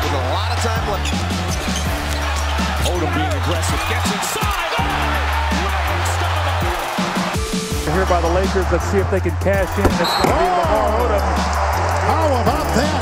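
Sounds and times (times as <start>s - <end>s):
basketball arena crowd noise: 0.0s - 13.0s.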